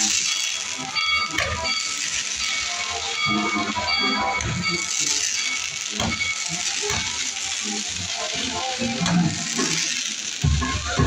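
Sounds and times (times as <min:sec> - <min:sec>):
fireworks fountain hissing: 0:00.0 - 0:11.0
music: 0:00.0 - 0:11.0.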